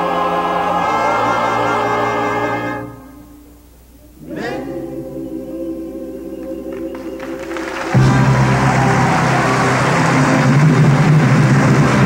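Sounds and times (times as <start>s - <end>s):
chorus and orchestra holding a chord: 0.0s - 3.5s, 4.2s - 12.0s.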